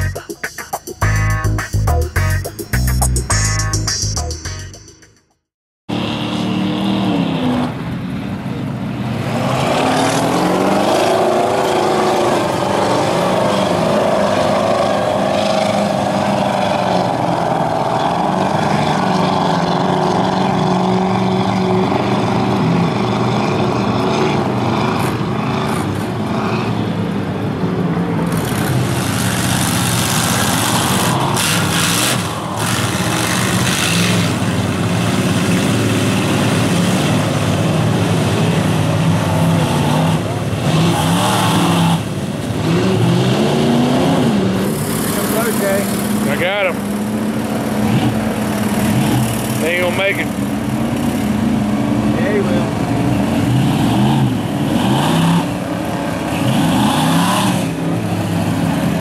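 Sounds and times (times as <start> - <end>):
truck engines revving hard: 5.9 - 59.0.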